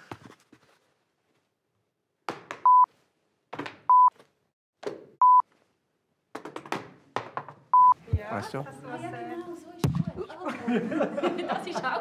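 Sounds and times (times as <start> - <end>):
censor bleep: 5.2 - 5.4, 7.8 - 8.0.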